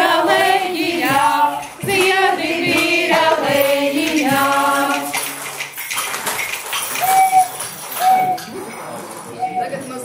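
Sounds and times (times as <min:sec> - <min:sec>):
women singing folk song: 0:00.0 - 0:05.5.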